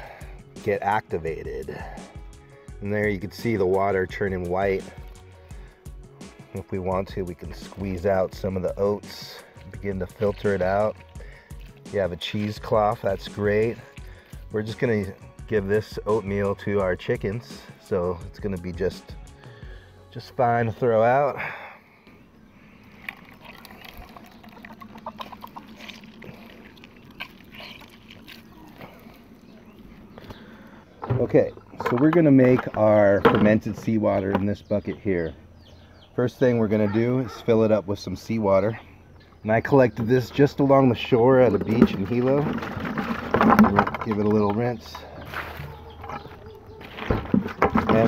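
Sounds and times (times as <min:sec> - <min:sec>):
wet squishes of kneading oats: 0:06.5 - 0:14.9, 0:23.0 - 0:30.5, 0:44.1 - 0:47.1
water sloshing in bucket: 0:06.9 - 0:14.9, 0:22.7 - 0:34.3, 0:40.0 - 0:48.0
water drips and splashes: 0:08.3 - 0:14.5, 0:22.8 - 0:29.9.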